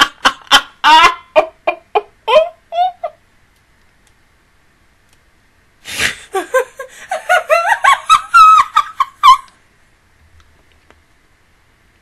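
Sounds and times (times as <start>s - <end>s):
woman giggling: 0.0s - 3.2s, 5.9s - 9.5s.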